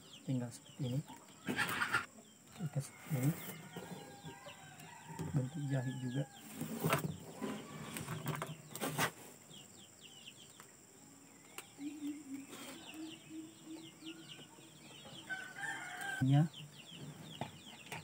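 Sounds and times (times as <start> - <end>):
small birds chirping: 0.0 - 18.0
chicken calling: 1.4 - 2.2.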